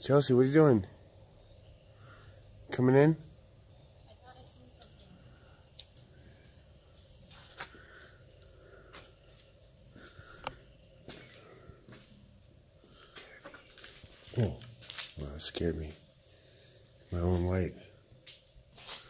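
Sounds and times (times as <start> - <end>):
faint high whine: 0.0 - 19.0
soft footsteps: 11.0 - 15.2.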